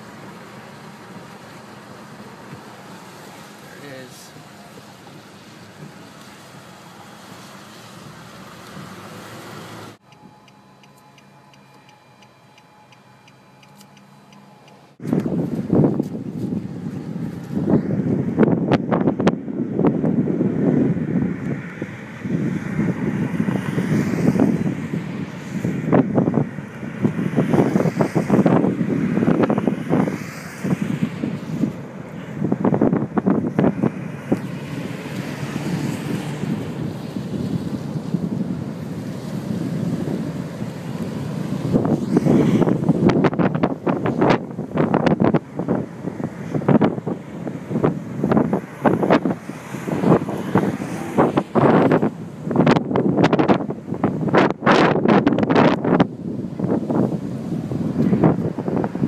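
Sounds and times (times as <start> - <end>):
faint regular ticking: 10.0 - 15.0
gusting wind buffeting microphone: 15.0 - 59.0.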